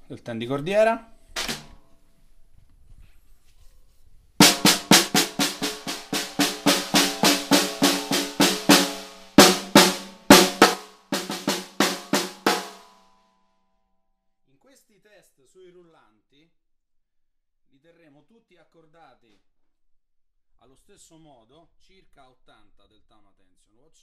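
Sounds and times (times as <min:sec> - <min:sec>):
snare drum strokes: 0:01.4 - 0:01.8, 0:04.4 - 0:13.0.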